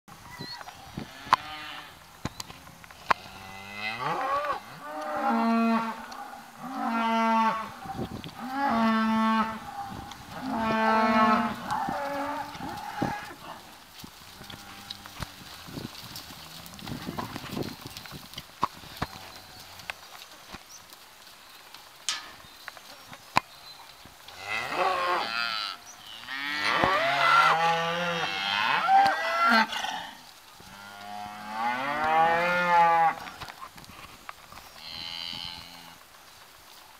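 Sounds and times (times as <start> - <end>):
cattle mooing: 3.1 - 13.5.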